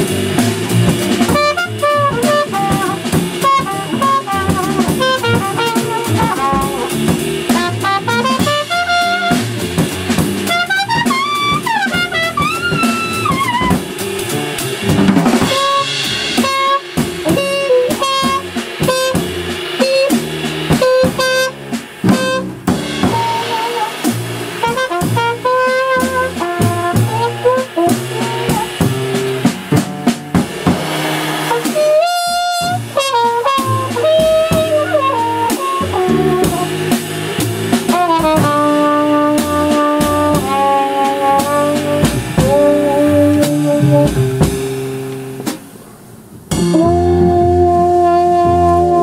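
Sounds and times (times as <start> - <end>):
walking upright bass: 0.0 - 45.6, 46.4 - 49.0
busy drum kit: 0.0 - 49.0
trumpet solo: 0.3 - 14.8, 15.4 - 29.6, 30.8 - 45.5, 46.5 - 49.0.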